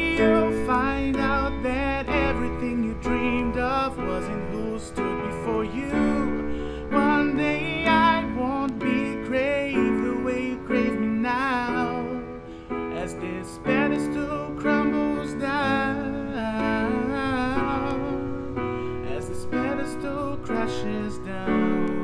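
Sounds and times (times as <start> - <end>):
keyboard chords: 0.0 - 22.0
man singing wordless notes: 0.0 - 22.0.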